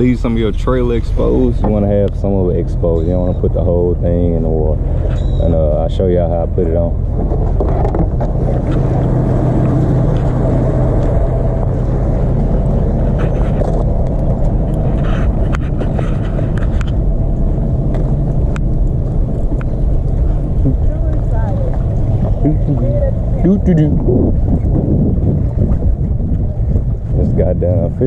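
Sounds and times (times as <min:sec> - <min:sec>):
steady low hum: 0:00.0 - 0:28.0
wind buffeting microphone: 0:00.0 - 0:28.0.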